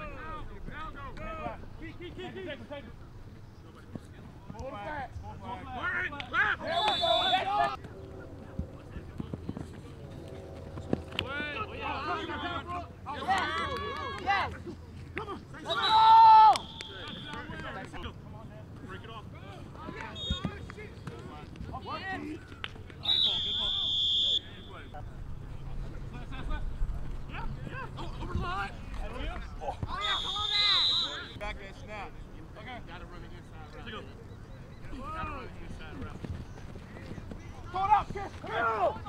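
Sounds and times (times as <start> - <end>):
players shouting: 4.7 - 7.8, 10.5 - 18.0, 27.3 - 31.4, 36.9 - 39.0
loud whistle blast: 6.7 - 7.5, 15.7 - 17.4, 23.0 - 24.9, 29.9 - 31.4
running footsteps on grass: 35.0 - 39.0.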